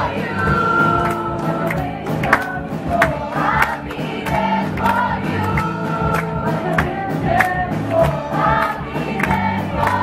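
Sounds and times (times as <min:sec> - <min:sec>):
children's choir singing in harmony: 0:00.0 - 0:10.0
regular beat: 0:00.0 - 0:10.0.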